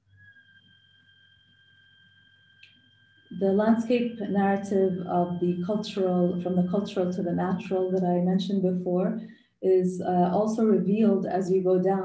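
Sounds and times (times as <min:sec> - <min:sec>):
low hum: 0:00.0 - 0:12.0
high-pitched tone: 0:03.3 - 0:09.1.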